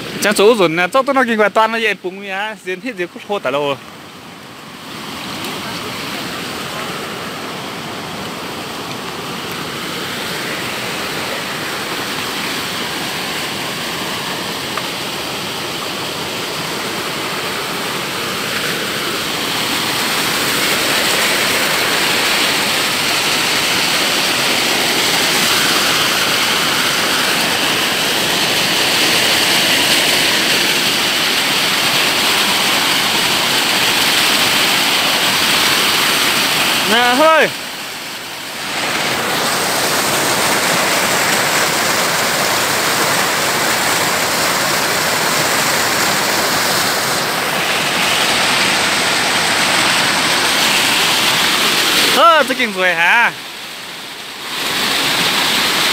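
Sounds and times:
stream rushing over rocks: 0.0s - 55.9s.

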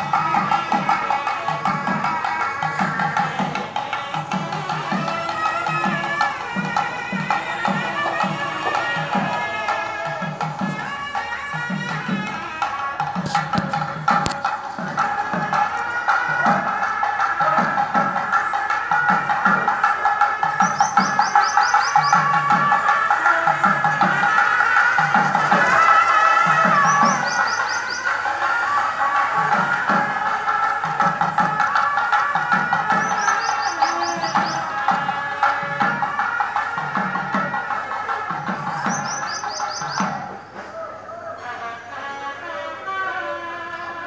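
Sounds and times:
drum beating: 0.0s - 41.1s
reed pipe melody: 0.0s - 44.0s.

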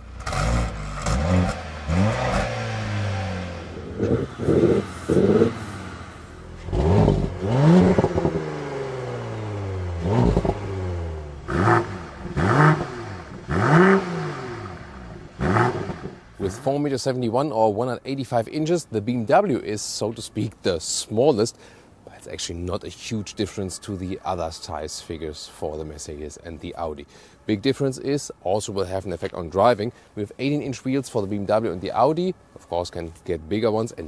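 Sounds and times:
car engine revving: 0.0s - 16.7s.

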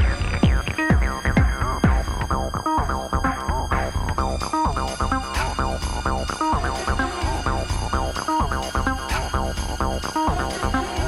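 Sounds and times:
kick drum beat: 0.0s - 2.4s
acid house dance music: 0.0s - 11.0s.

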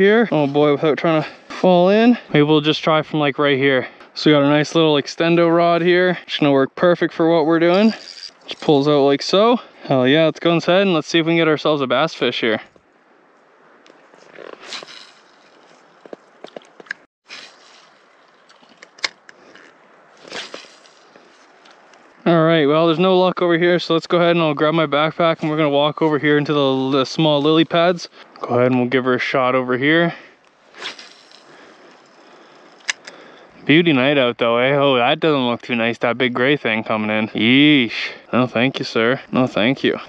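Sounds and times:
fishing rod swishing: 14.1s - 16.6s, 17.3s - 21.9s, 30.7s - 33.0s
fishing rod swish: 14.5s - 15.6s, 17.3s - 18.0s, 20.2s - 21.2s, 30.7s - 31.5s.

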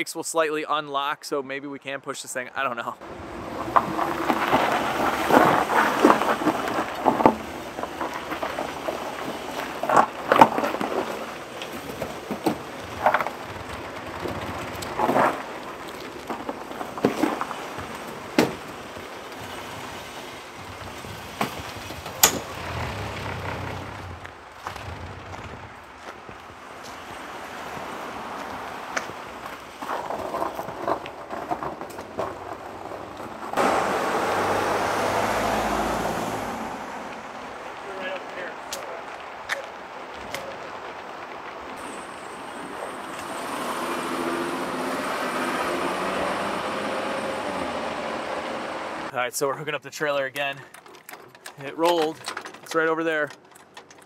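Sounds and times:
vehicles on slushy street: 3.0s - 49.3s
sharp clicks and crunches: 3.7s - 19.4s, 20.8s - 27.0s, 50.1s - 54.0s
loud rushing sound: 33.5s - 38.6s.

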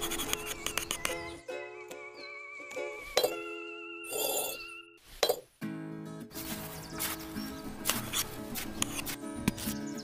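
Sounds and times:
background music with held notes: 0.0s - 5.0s, 5.6s - 10.0s.

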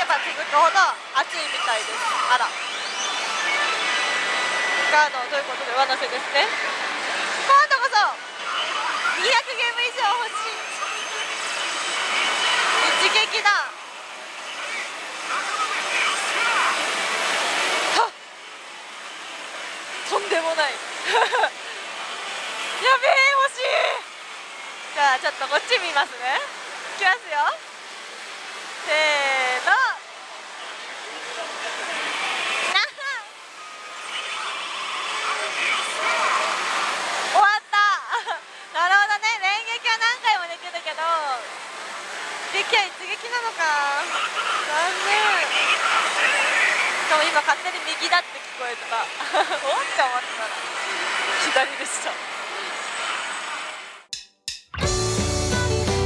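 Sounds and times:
gaming parlour din: 0.0s - 18.3s
pachinko parlor noise: 0.0s - 53.4s
slot machine whooshing rush: 1.7s - 7.8s.

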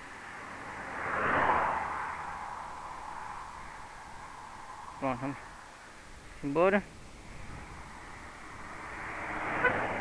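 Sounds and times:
car driving past: 0.0s - 6.1s, 7.2s - 10.0s.

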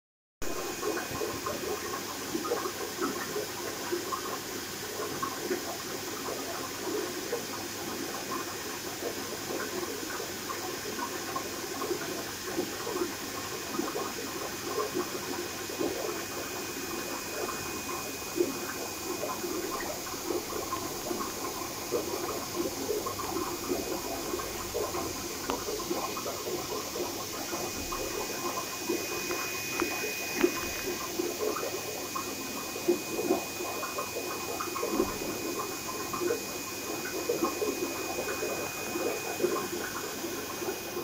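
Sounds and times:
water bubbling and trickling: 0.4s - 41.0s
faint high whine: 13.7s - 41.0s.

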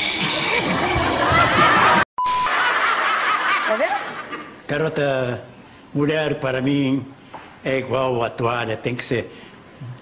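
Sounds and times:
audience laughter: 0.2s - 4.5s
short beep: 2.2s - 2.5s.

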